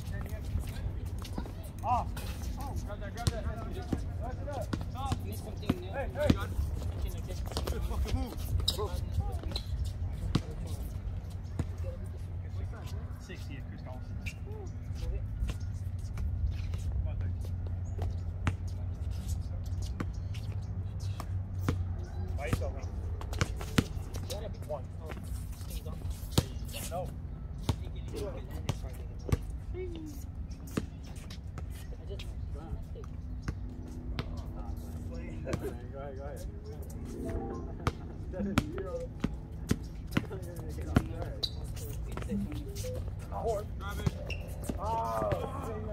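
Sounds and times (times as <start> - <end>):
basketballs bouncing on concrete: 0.0 - 13.2, 14.5 - 18.9, 19.8 - 25.3, 26.2 - 32.3, 32.9 - 35.9, 36.8 - 45.9
distant players' voices: 0.0 - 45.9.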